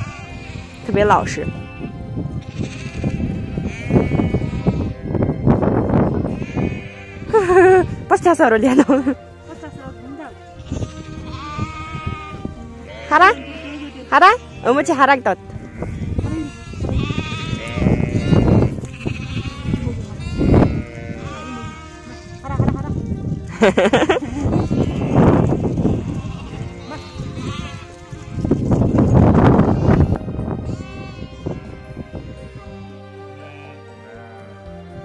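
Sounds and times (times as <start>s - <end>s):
sheep bleating: 0.0s - 5.1s, 6.3s - 8.0s, 10.5s - 34.4s.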